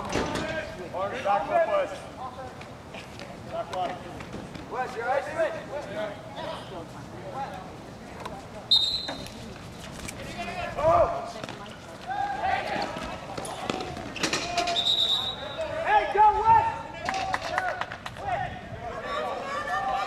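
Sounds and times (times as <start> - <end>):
high whistle-like tones: 8.7 - 9.4, 14.7 - 15.6
people calling out: 18.9 - 20.0.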